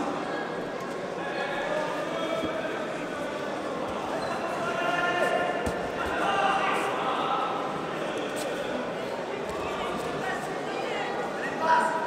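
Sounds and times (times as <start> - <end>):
indistinct crowd voices: 0.0 - 12.0.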